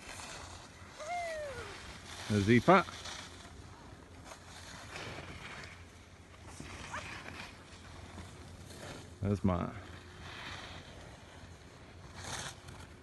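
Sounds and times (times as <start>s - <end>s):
skis sliding over snow: 0.0s - 13.0s.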